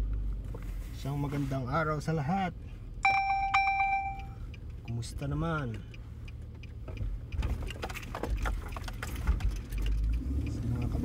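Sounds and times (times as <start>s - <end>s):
moving car rumble: 0.0s - 11.0s
bright chime ringing: 3.0s - 4.4s.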